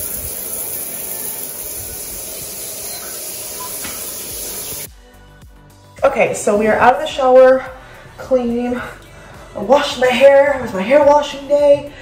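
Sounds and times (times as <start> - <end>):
shower water spraying on tiles: 0.0 - 4.9.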